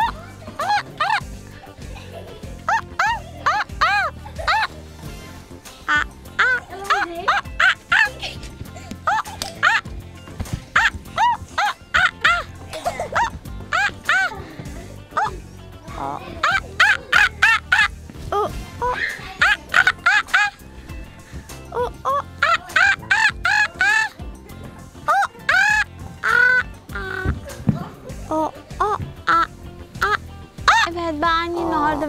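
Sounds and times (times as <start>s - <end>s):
background music: 0.0s - 32.0s
high-pitched monkey-like calls: 5.9s - 8.2s, 9.1s - 9.8s, 10.8s - 12.5s, 13.2s - 14.3s, 16.0s - 17.9s, 18.8s - 20.6s, 21.8s - 24.2s, 25.1s - 27.3s, 28.8s - 30.9s.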